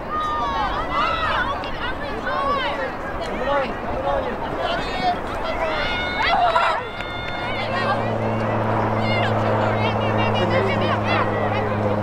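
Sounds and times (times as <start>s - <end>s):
people shouting and calling out: 0.0s - 12.0s.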